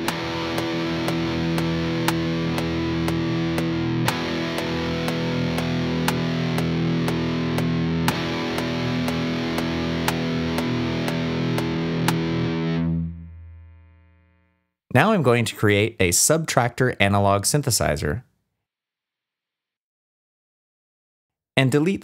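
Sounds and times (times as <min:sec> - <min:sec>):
metronome click: 0:00.0 - 0:12.4
electric guitar chords: 0:00.0 - 0:14.6.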